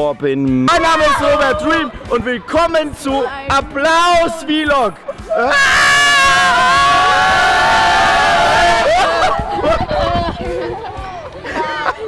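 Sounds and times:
children and man screaming: 0:00.7 - 0:01.9, 0:05.3 - 0:10.1.

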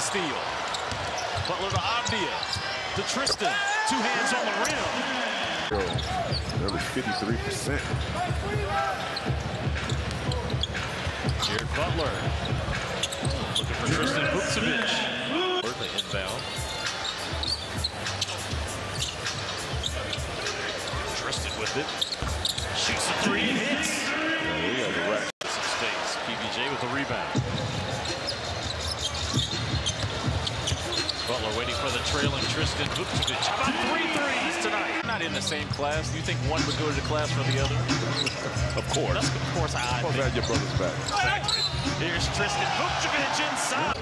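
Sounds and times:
arena crowd noise: 0:00.0 - 0:44.0.

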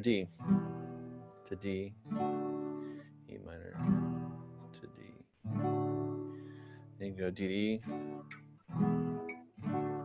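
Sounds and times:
acoustic guitar chords strummed: 0:00.0 - 0:10.0.

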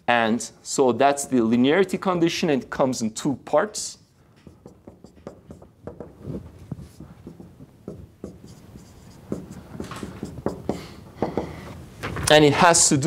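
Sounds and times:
marker writing on whiteboard: 0:04.1 - 0:11.8.

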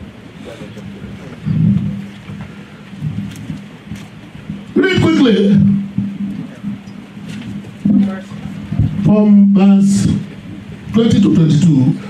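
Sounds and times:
man talking: 0:04.8 - 0:05.8, 0:09.0 - 0:10.3, 0:10.9 - 0:12.0.

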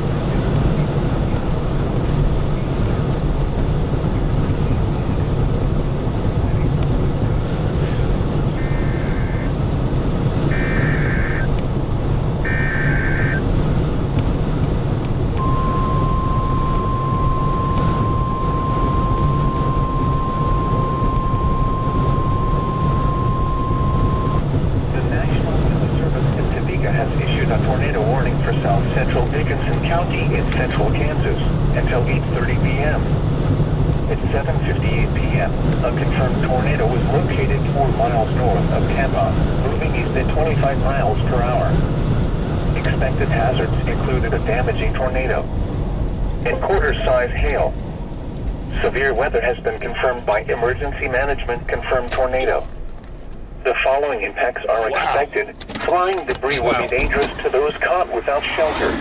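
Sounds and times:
low rumble: 0:00.0 - 0:53.7, 0:56.2 - 0:59.0
buzzy data tone bursts: 0:08.5 - 0:09.6, 0:10.5 - 0:11.5, 0:12.4 - 0:13.4
steady warning alarm tone: 0:08.5 - 0:09.6, 0:10.4 - 0:11.5, 0:12.4 - 0:13.5, 0:15.4 - 0:24.5
broadcast voice: 0:24.9 - 0:33.1, 0:34.1 - 0:41.8, 0:42.8 - 0:45.5, 0:46.4 - 0:47.8, 0:48.7 - 0:52.8, 0:53.6 - 0:59.0.

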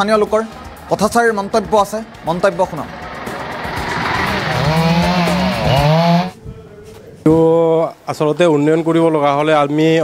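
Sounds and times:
chainsaw cutting trees: 0:04.2 - 0:06.4.

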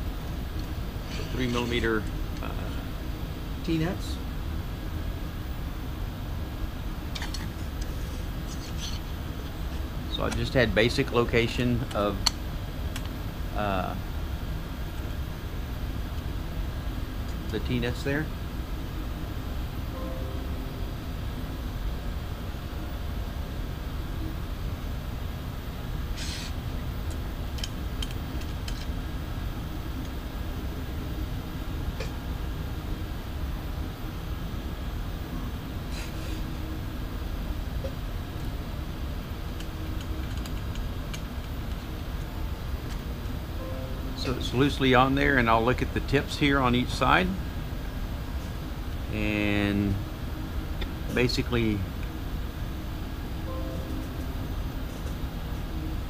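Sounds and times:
low workshop rumble: 0:00.0 - 0:56.0
room hum: 0:00.0 - 0:56.0.

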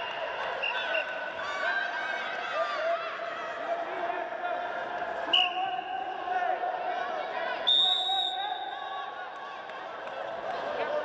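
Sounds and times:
referee whistle: 0:05.3 - 0:05.9, 0:07.6 - 0:08.7.

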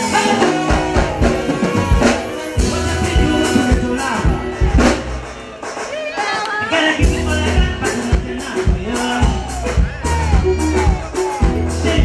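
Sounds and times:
drum kit hits: 0:00.0 - 0:06.0
live band playing: 0:00.0 - 0:12.0.

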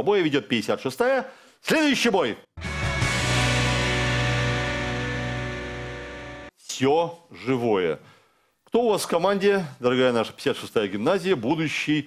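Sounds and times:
held musical chord with deep bass: 0:02.6 - 0:06.5.

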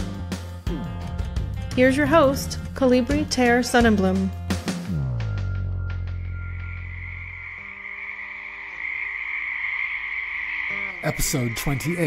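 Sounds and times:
faint low held tone: 0:05.0 - 0:07.8
high-pitched chorus of calling animals: 0:06.4 - 0:12.0.

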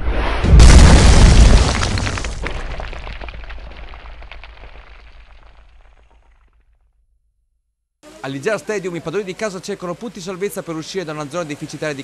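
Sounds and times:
whoosh: 0:00.0 - 0:01.0
loud deep boom: 0:00.0 - 0:06.0.

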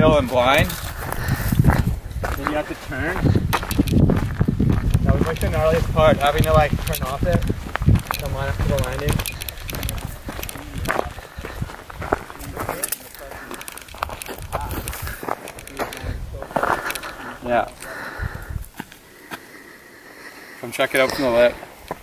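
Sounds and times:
wind rumble on microphone: 0:00.0 - 0:12.8, 0:13.8 - 0:16.5, 0:18.1 - 0:18.8
footsteps on rocky dirt trail: 0:00.1 - 0:19.5, 0:20.9 - 0:22.0
quiet voices: 0:08.2 - 0:21.6.

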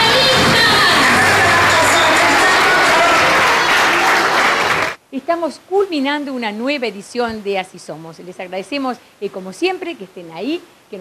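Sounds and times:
voices: 0:00.0 - 0:04.1
audience applauding: 0:00.0 - 0:05.0.

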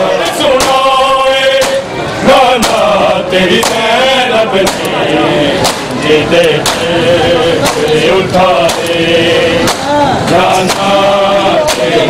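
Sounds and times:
men chanting a lament: 0:00.0 - 0:12.0
hands slapping chests: 0:05.6 - 0:05.9.

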